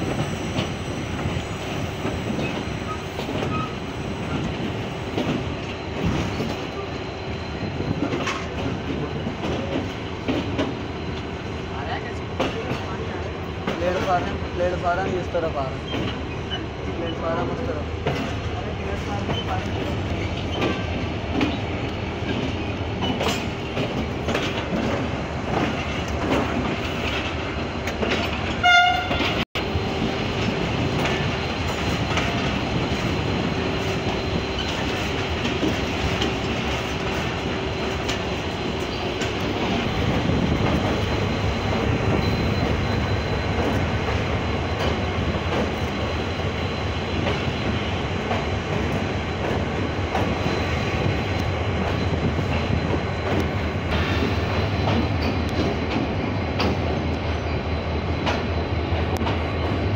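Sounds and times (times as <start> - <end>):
train wheels clattering on rails: 0.0 - 59.9
train horn blast: 28.6 - 29.4.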